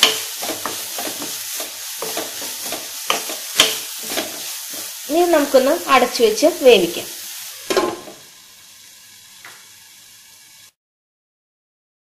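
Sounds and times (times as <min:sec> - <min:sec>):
stirring scrape in pan: 0:00.0 - 0:05.1
food sizzling in oil: 0:00.0 - 0:10.8.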